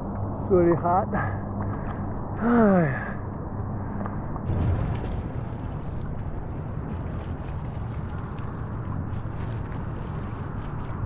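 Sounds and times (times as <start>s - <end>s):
man sighing: 2.4s - 3.2s.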